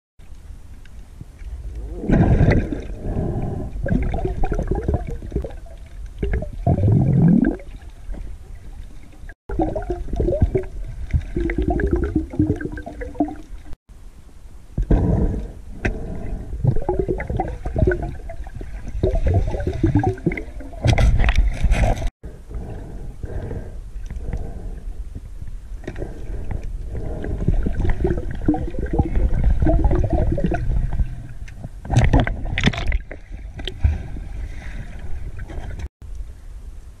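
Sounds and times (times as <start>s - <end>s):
water gurgling underwater: 1.8s - 8.9s, 9.5s - 13.8s, 16.6s - 21.8s, 27.0s - 31.2s.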